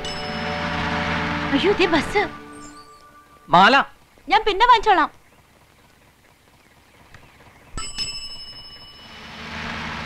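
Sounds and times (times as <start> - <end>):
bus bell ringing: 0.0 - 1.2, 7.8 - 9.5.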